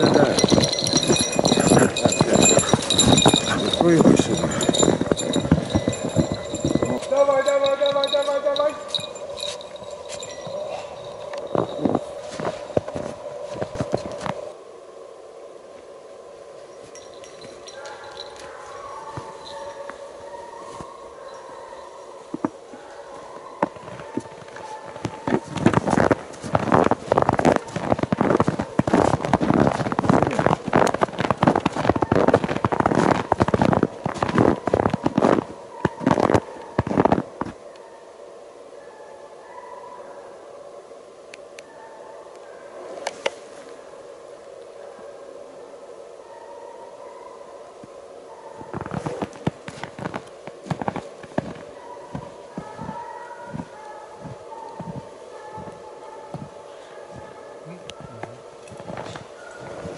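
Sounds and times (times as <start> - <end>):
distant hounds baying: 0.0 - 14.6, 16.3 - 59.9.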